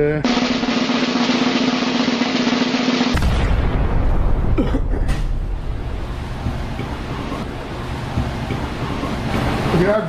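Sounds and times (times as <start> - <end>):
snare drum roll: 0.3 - 3.4.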